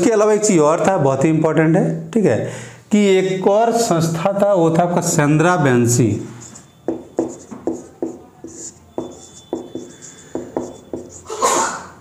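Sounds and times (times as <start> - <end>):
marker writing on whiteboard: 6.2 - 11.4.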